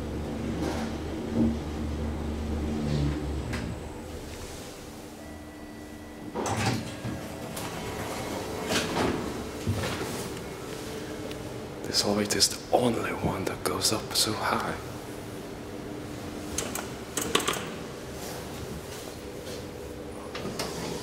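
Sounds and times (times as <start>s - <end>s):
elevator doors sliding open: 0.0s - 5.2s, 6.2s - 11.1s, 16.1s - 21.0s
elevator car humming: 0.0s - 21.0s.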